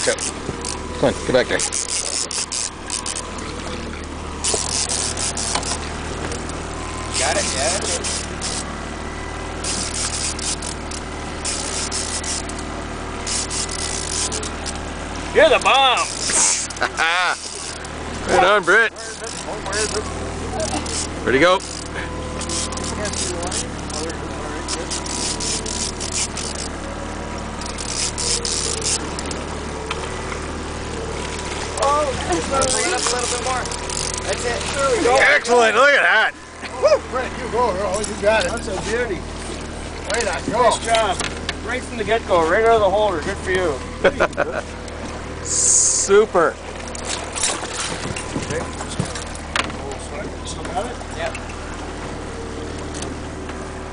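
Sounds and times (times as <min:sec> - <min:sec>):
boat engine humming: 0:00.0 - 0:53.9.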